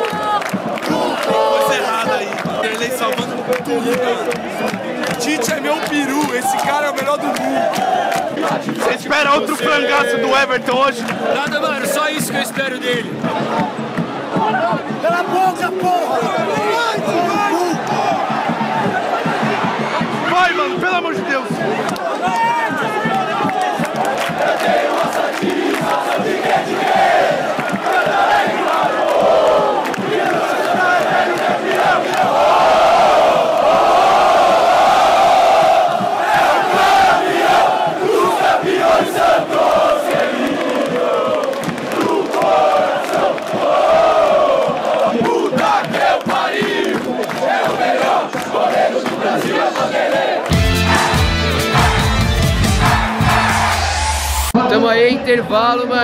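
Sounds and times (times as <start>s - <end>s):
stadium crowd chanting and singing: 0.0s - 56.0s
music jingle with steady beat: 10.4s - 32.4s, 50.5s - 54.6s.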